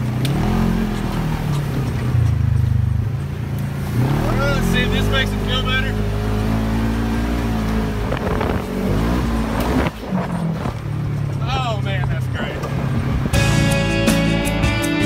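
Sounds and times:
engine running on dirt trail: 0.0s - 14.9s
music: 13.3s - 15.0s.

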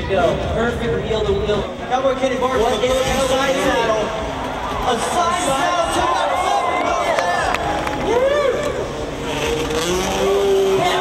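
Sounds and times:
motocross bike engine revving: 2.4s - 5.5s, 8.6s - 11.0s.

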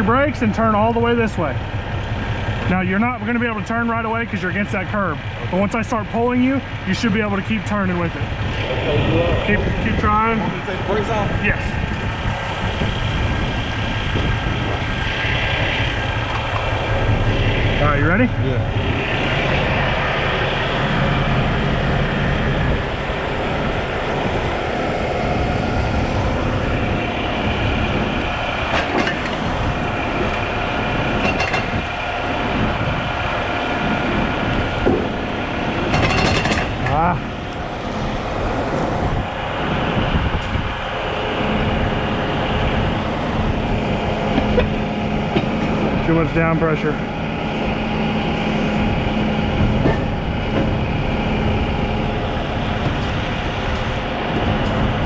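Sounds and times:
heavy diesel engines under load: 0.0s - 55.0s
winch pulling: 0.0s - 55.0s
metal clanks and knocks: 28.7s - 30.4s, 31.1s - 31.9s, 35.8s - 37.1s, 44.3s - 45.9s, 49.6s - 50.8s.

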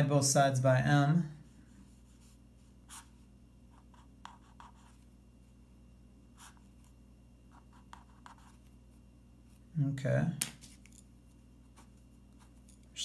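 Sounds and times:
low room hum: 0.0s - 13.0s
marker scratching on paper: 1.9s - 5.0s, 6.4s - 6.9s, 7.5s - 8.7s.

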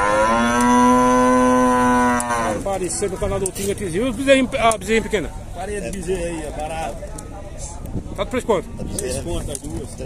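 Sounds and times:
cow mooing: 0.0s - 2.6s.

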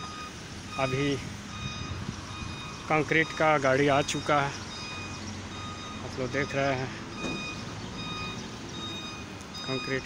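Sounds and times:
truck reversing alarm beeping: 0.0s - 10.0s.

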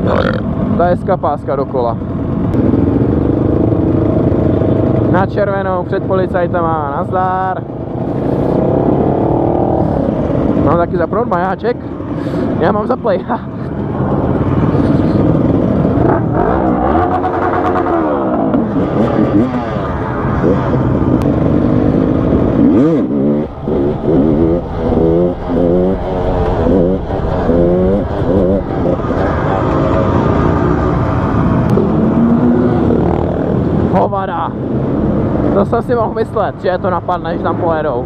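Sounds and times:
rider talking: 0.0s - 2.3s, 4.4s - 7.9s, 8.6s - 17.8s, 32.1s - 38.0s
dirt bike engine revving: 2.1s - 35.6s
wind rush: 7.6s - 16.5s, 17.3s - 38.0s.

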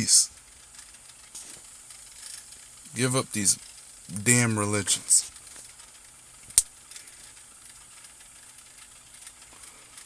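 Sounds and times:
recording hiss: 0.0s - 10.0s
sharp click: 6.5s - 6.7s.

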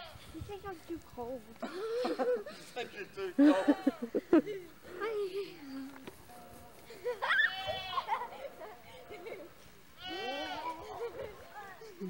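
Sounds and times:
child squealing: 7.2s - 8.0s
child crying out: 7.2s - 8.1s.

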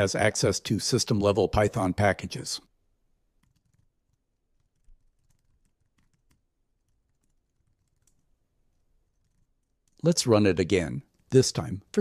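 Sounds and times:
typing on computer keyboard: 3.4s - 8.4s, 9.0s - 10.0s.

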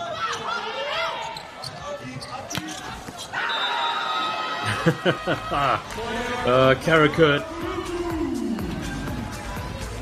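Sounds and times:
shoes squeaking on court: 0.1s - 3.5s
crowd voices echoing: 2.8s - 10.0s.

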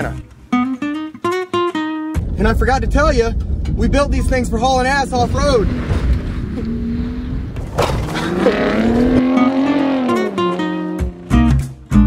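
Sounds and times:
music: 0.0s - 4.5s, 9.2s - 12.0s
truck engine revving: 2.2s - 11.4s.

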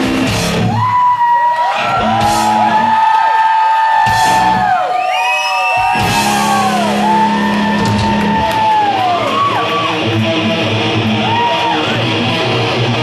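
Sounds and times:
heavy metal band: 0.0s - 4.9s, 5.7s - 13.0s.

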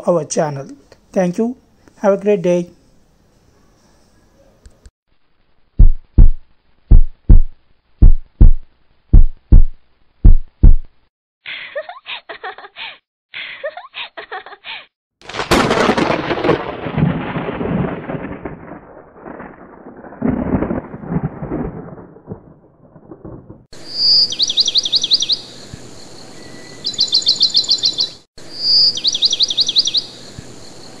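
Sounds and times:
thunder clap rolling: 15.2s - 23.7s.

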